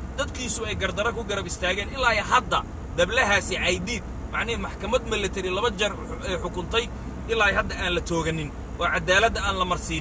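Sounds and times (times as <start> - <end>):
car cabin rumble: 0.0 - 10.0
man talking: 0.2 - 10.0.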